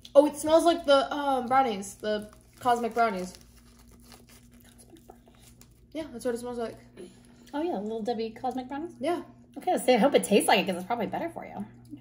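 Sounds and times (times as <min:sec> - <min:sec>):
snack wrapper crinkling: 0:00.0 - 0:05.9.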